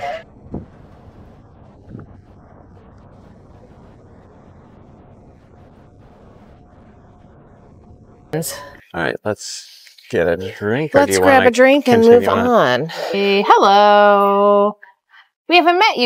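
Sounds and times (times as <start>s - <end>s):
faint steady hum: 0.0s - 14.2s
wind buffeting microphone: 0.2s - 8.4s.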